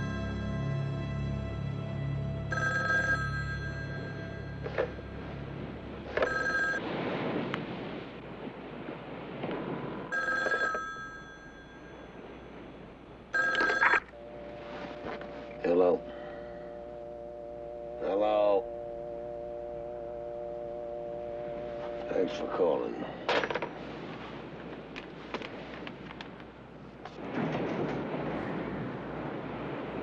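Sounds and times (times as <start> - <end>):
telephone bell ringing: 2.5 - 5.5, 6.1 - 6.8, 10.1 - 12.5, 13.3 - 14.4.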